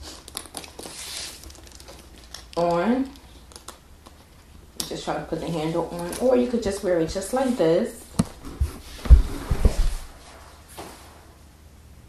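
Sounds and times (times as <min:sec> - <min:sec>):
leather bag knocks and rustles: 0:09.0 - 0:10.1.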